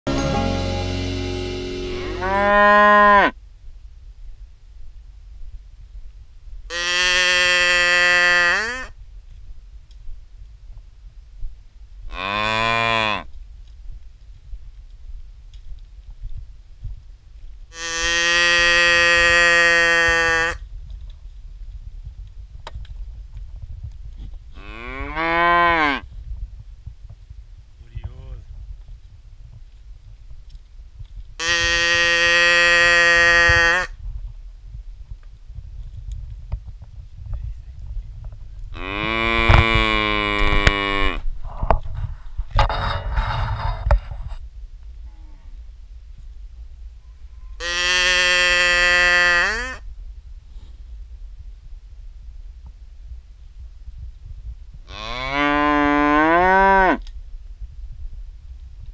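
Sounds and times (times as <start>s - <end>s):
cow mooing: 0.9s - 3.3s, 6.7s - 8.9s, 17.7s - 20.6s, 31.4s - 33.9s, 47.6s - 49.8s
rough breathy cow sound: 40.4s - 44.4s.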